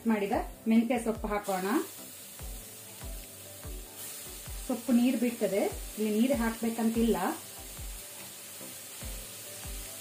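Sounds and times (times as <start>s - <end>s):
food sizzling in hot oil: 0.0s - 10.0s.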